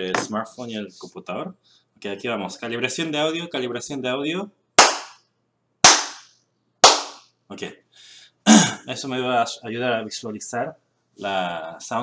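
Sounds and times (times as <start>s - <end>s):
sharp hand claps: 4.8s - 7.3s.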